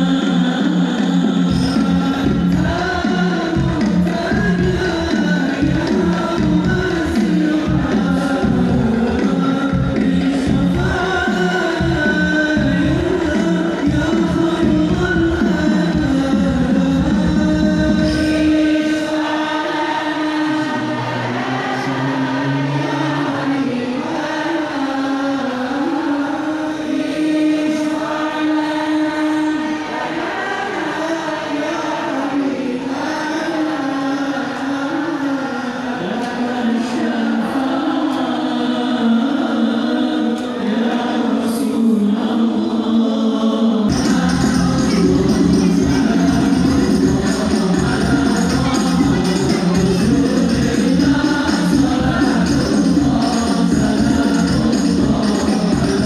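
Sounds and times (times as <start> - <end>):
devotional song singing: 0.0 - 56.0
voices chanting in unison: 0.0 - 56.0.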